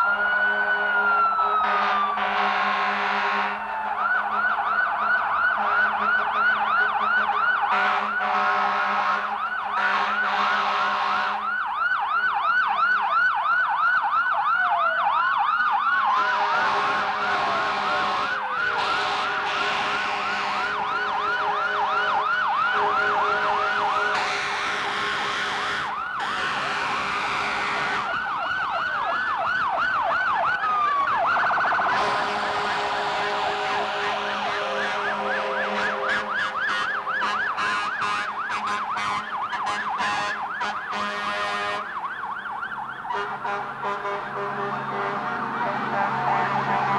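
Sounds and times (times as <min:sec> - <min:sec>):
falling siren glides and steady tones: 0:00.0 - 0:46.9
sirens wailing: 0:00.0 - 0:46.9.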